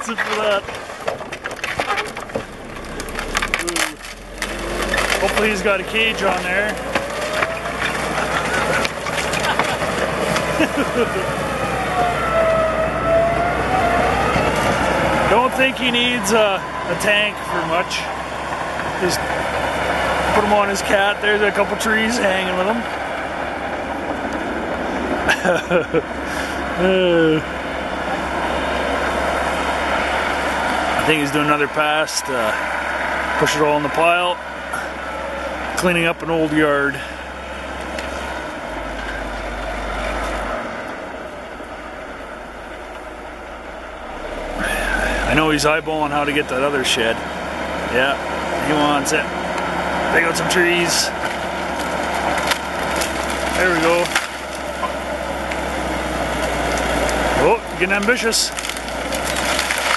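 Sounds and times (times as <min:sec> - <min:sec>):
wooden boards cracking and splintering: 0:00.0 - 0:10.8, 0:51.1 - 0:59.9
bulldozer diesel engine rumble: 0:00.0 - 0:59.9.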